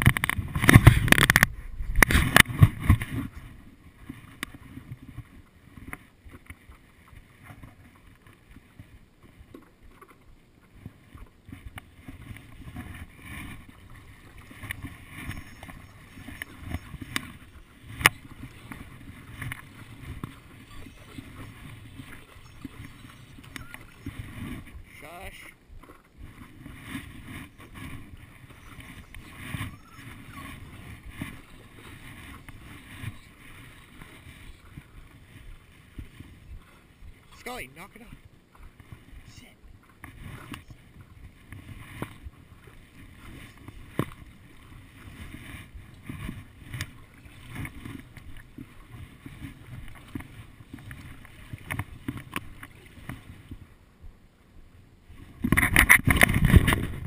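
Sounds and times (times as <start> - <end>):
water lapping against board: 0.0 - 53.9, 54.6 - 57.0
paddle strokes: 0.0 - 57.0.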